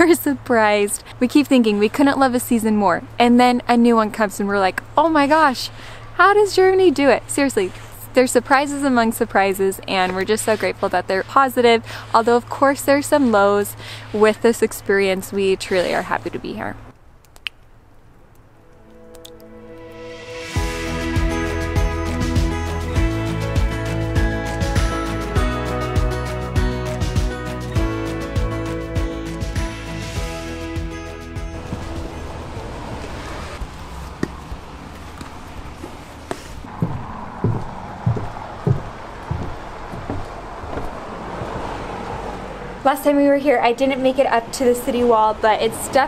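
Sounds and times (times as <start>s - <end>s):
soft background music: 18.6s - 32.6s
footsteps on wooden walkway: 34.0s - 42.2s.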